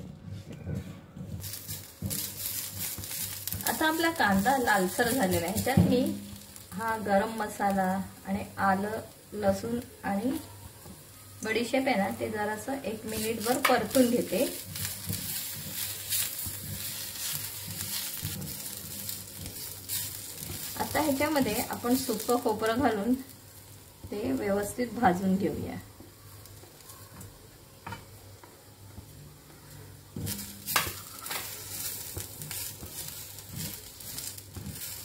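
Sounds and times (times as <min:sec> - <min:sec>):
spatula scraping a pan: 0:00.8 - 0:06.1, 0:13.1 - 0:22.4, 0:30.2 - 0:35.0
onions sizzling in a pan: 0:01.2 - 0:35.0.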